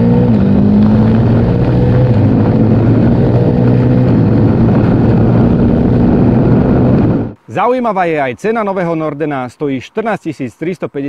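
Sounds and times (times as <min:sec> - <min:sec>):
motorcycle engine cruising: 0:00.0 - 0:07.4.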